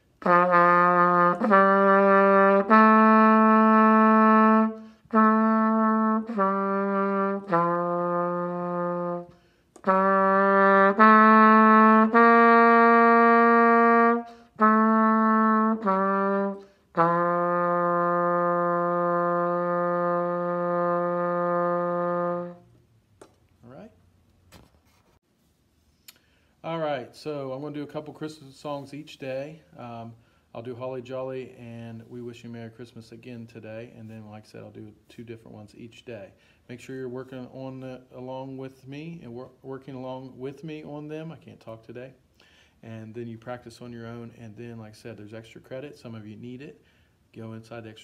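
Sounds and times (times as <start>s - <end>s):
solo trumpet melody: 0.0s - 22.8s.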